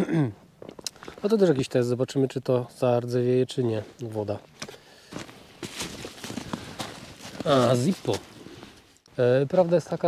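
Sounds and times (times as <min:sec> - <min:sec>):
footsteps in snow: 0:04.6 - 0:09.0.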